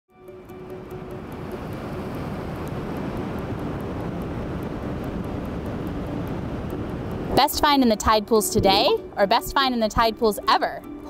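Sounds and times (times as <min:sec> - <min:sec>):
faint music: 0:00.1 - 0:11.0
surf rushing: 0:00.8 - 0:09.1.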